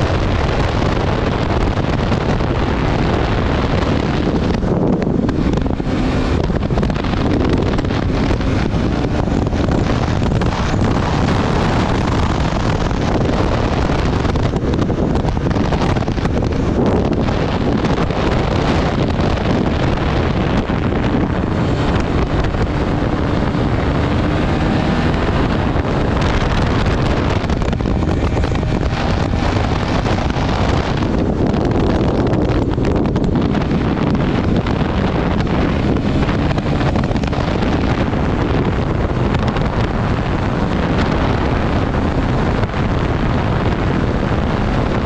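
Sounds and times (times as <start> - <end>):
motorcycle engine revving: 0.0 - 45.0
wind buffeting microphone: 0.0 - 45.0.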